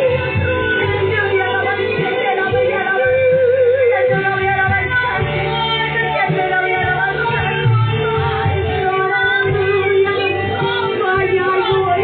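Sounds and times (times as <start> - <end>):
worship song through loudspeakers: 0.0 - 12.0.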